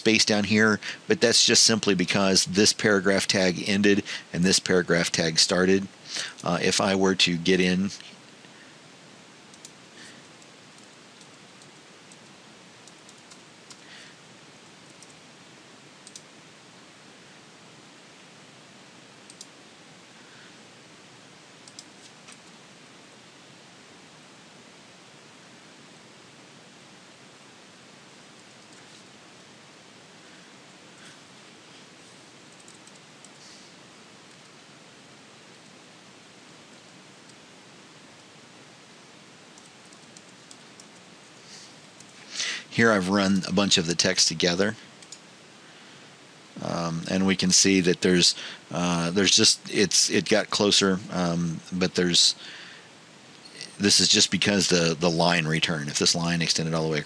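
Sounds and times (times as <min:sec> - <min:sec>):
steady low hiss: 0:00.0 - 0:57.0
keyboard and mouse clicks: 0:21.6 - 0:22.6, 0:32.5 - 0:33.4.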